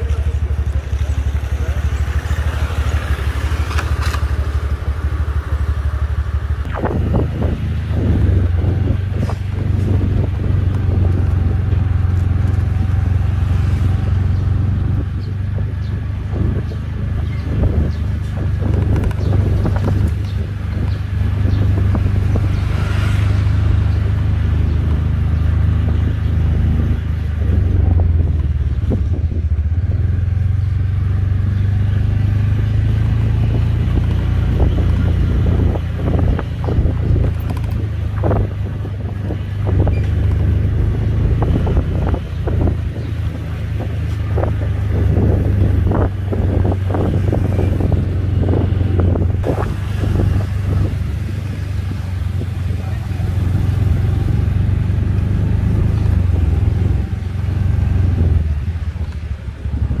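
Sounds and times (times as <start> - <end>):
car engine and tyre rumble: 0.0 - 60.0.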